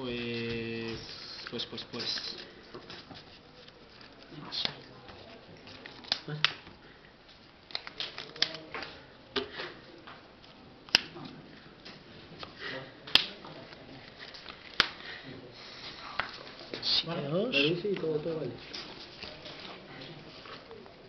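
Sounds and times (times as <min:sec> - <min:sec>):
trading cards rustling and tapping: 0:00.2 - 0:15.0.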